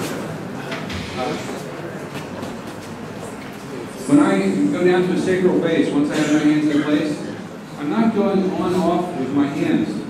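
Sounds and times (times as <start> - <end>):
room noise: 0.0 - 7.2
indistinct talk: 0.0 - 10.0.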